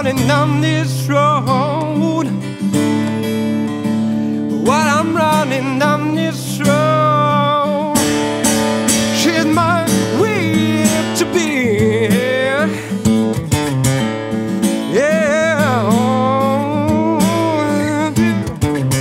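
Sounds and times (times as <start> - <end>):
man singing: 0.0 - 3.1, 4.5 - 13.4, 14.6 - 19.0
strummed acoustic guitar: 0.0 - 19.0.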